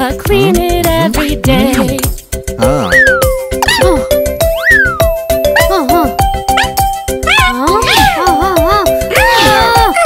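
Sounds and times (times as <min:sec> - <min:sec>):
bouncy children's music: 0:00.0 - 0:10.0
cartoon puppy crying: 0:02.7 - 0:10.0.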